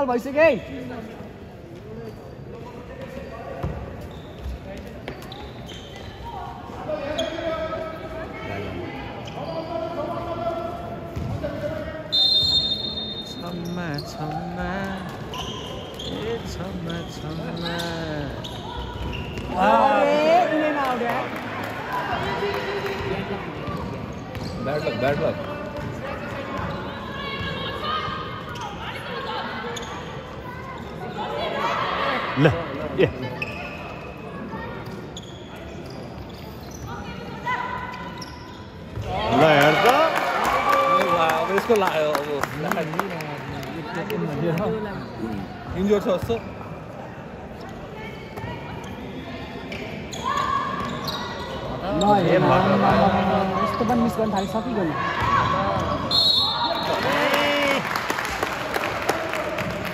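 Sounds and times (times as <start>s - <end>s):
high whistle: 12.1s - 13.5s, 56.0s - 57.0s.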